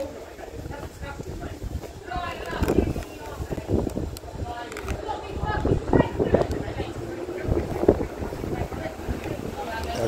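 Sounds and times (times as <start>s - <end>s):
distant people talking and arguing: 0.0s - 10.0s
wind buffeting microphone: 0.0s - 10.0s.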